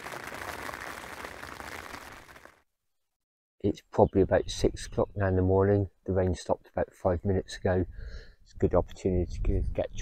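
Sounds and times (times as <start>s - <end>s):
rain on a tent: 0.0s - 2.6s.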